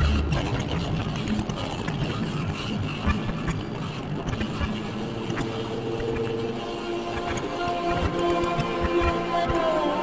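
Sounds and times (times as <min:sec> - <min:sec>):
experimental noise music: 0:00.0 - 0:10.0.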